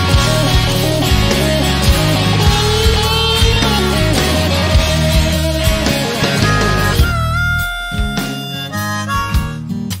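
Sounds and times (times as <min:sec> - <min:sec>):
bass: 0:00.0 - 0:10.0
drums: 0:00.0 - 0:10.0
electric guitar: 0:00.0 - 0:10.0
harmonica bending note: 0:00.0 - 0:10.0.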